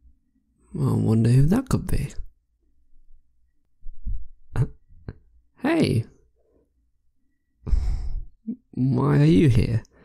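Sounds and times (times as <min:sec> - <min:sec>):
man speaking: 0:00.7 - 0:02.3, 0:05.6 - 0:06.2, 0:08.5 - 0:09.9
man sighing: 0:07.6 - 0:08.6.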